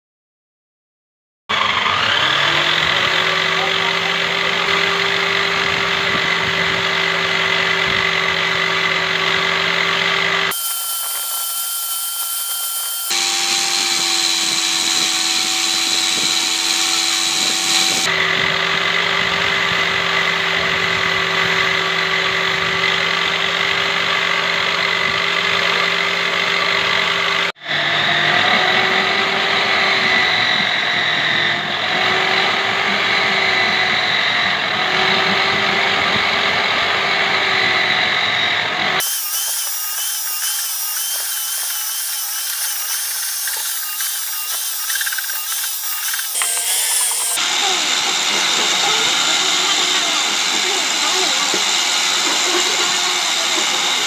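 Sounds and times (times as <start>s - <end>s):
belt sander motor whine: 1.5s - 54.0s.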